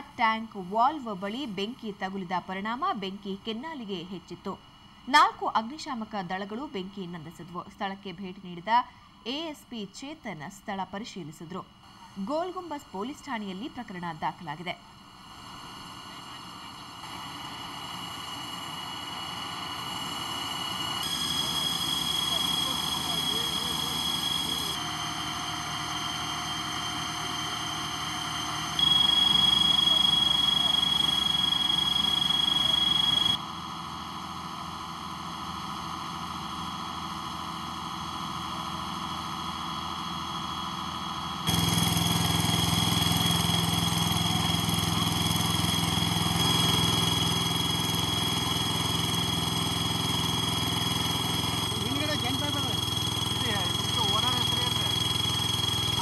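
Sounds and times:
thin steady whine: 0.0s - 56.0s
engine-like drone and hiss: 11.8s - 56.0s.

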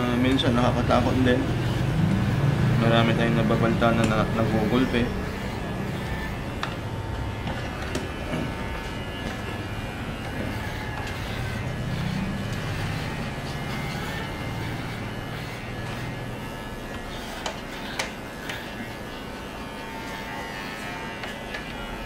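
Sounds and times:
electric clipper buzzing: 0.0s - 22.0s.

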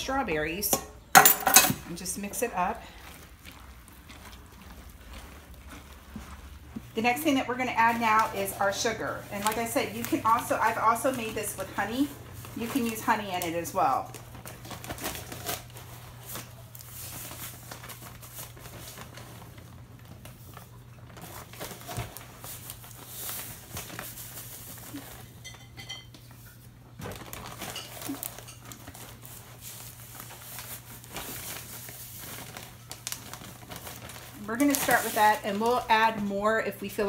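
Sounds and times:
bag crinkling: 0.4s - 25.4s, 26.8s - 37.0s.

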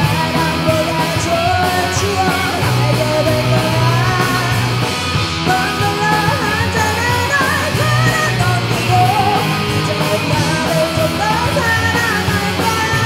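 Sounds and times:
bending lead guitar line: 0.0s - 13.0s
rock band playing loudly: 0.0s - 13.0s.

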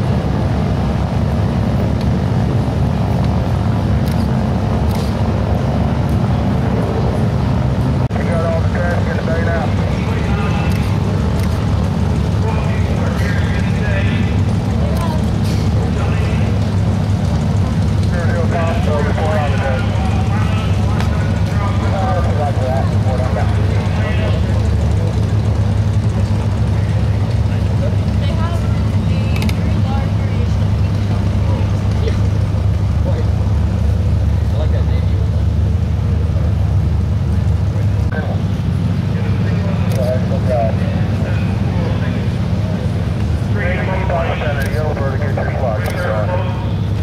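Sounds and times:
piston engine low rumble: 0.0s - 47.0s
faint voices: 6.0s - 47.0s.

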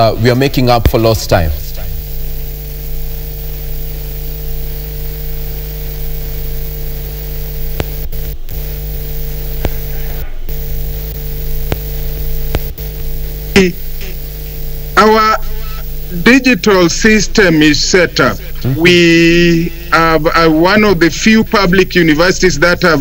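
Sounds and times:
electrical mains hum: 0.0s - 23.0s
faint buzz: 0.0s - 23.0s
clicks: 6.0s - 13.0s.

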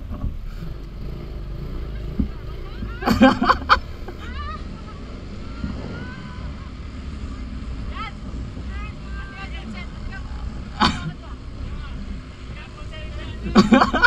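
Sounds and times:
wind and road noise: 0.0s - 14.0s
riders shouting: 1.7s - 14.0s.

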